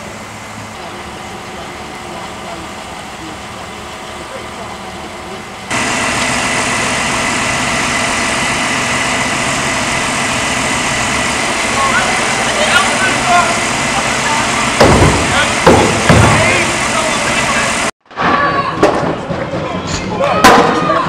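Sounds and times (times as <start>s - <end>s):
high-pitched whine: 0.0s - 17.9s
diesel engines idling: 0.0s - 18.0s.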